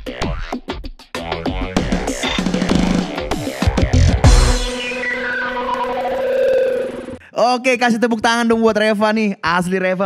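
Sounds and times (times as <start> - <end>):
steady held synth tones: 4.2 - 7.2
synthesized logo sting: 4.2 - 7.2
gliding higher tones: 4.6 - 7.2.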